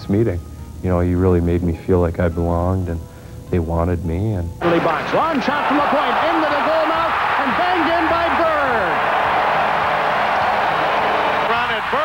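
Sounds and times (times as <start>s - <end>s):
arena crowd din: 4.6s - 12.0s.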